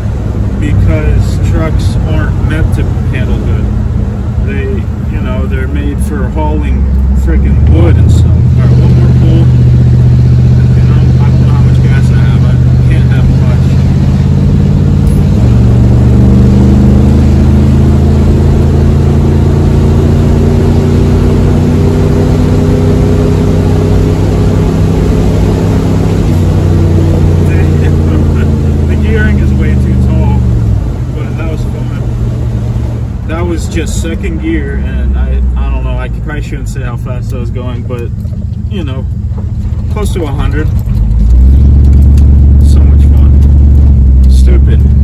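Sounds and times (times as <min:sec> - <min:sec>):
truck engine accelerating: 0:00.0 - 0:45.0.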